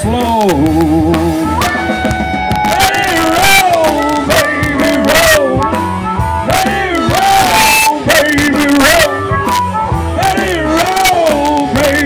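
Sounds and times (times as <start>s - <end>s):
blues-rock band playing: 0.0s - 12.0s
harmonica bending notes: 0.7s - 12.0s.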